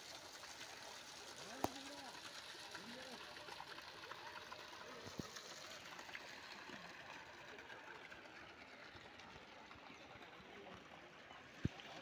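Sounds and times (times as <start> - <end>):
fountain water splashing: 0.0 - 12.0.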